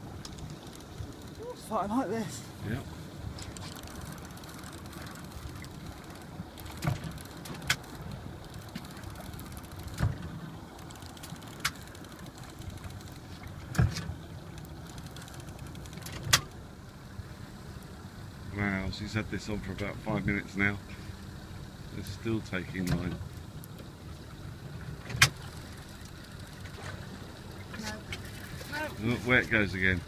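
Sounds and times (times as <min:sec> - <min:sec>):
boat engine idling: 0:00.0 - 0:30.0.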